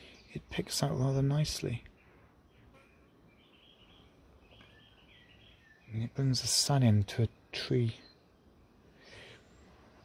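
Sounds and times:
birds chirping softly: 0.0s - 10.0s
outdoor background noise: 0.0s - 10.0s.

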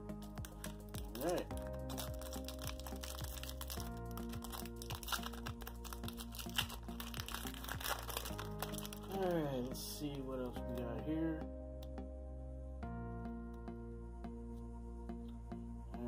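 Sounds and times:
soft background music: 0.0s - 16.0s
wrapper crinkling and tearing: 0.2s - 9.4s
man talking: 1.1s - 1.5s, 9.1s - 11.4s.

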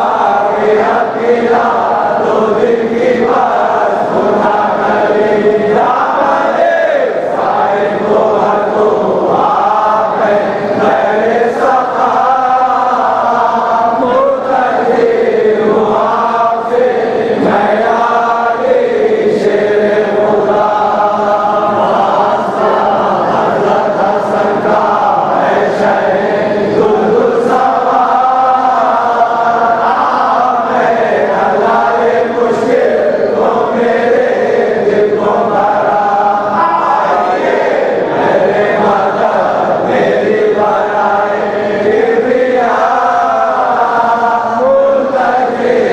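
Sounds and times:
men chanting together: 0.0s - 45.9s.

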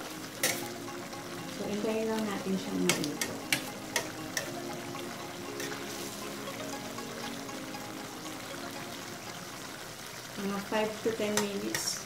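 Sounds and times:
chicken sizzling in a frying pan: 0.0s - 4.5s, 5.5s - 6.5s, 8.9s - 12.0s.

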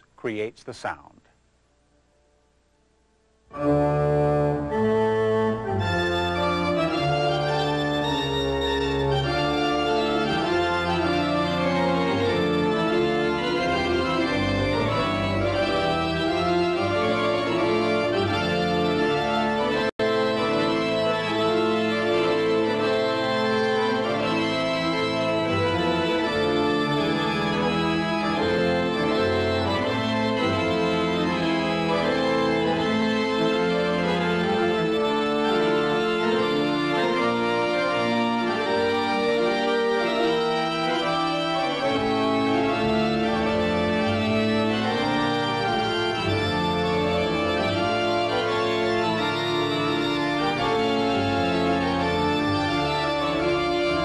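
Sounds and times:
pipe organ playing chords: 3.4s - 54.0s.

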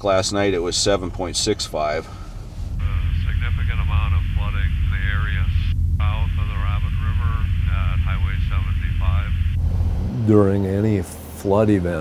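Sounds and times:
airplane engine droning: 0.8s - 12.0s
person talking over radio: 2.8s - 9.6s.

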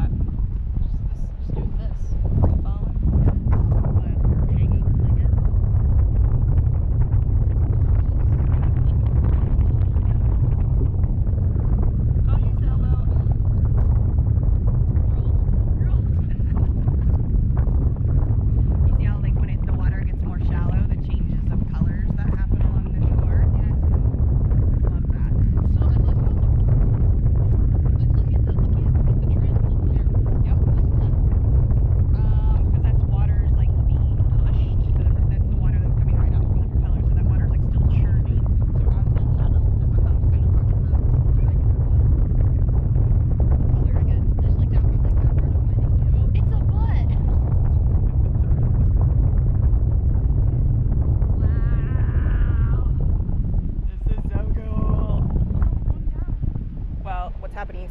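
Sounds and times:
faint voices: 0.0s - 50.2s
wind buffeting microphone: 0.0s - 57.9s.

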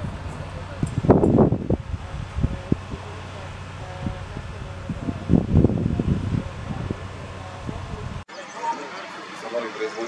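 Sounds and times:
wind buffeting microphone: 0.0s - 8.3s
indistinct voices: 0.0s - 10.0s.

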